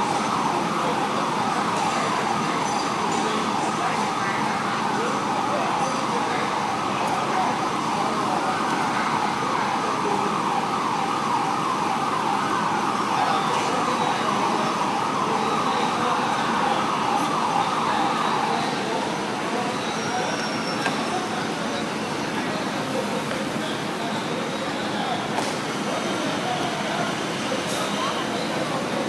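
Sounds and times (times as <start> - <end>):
emergency siren warbling: 0.0 - 25.3
traffic and engine noise: 0.0 - 29.0.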